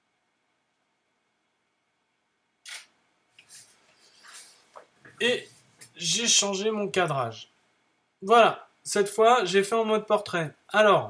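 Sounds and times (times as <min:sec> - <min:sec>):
camera shutter clack: 0:02.6 - 0:02.9.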